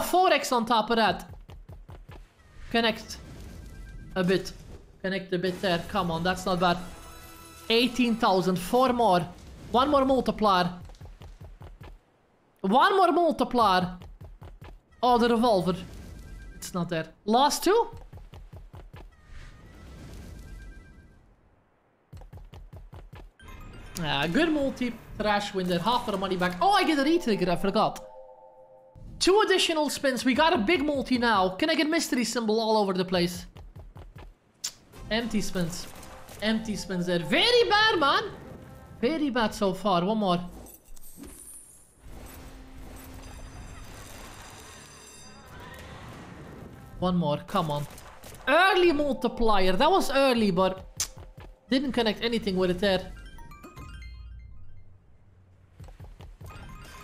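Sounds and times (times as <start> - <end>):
quiet game music: 0.0 - 57.0
slot game sound effects: 2.6 - 4.7, 23.4 - 29.0, 35.1 - 39.8, 42.4 - 45.7, 48.5 - 50.8, 51.8 - 55.2.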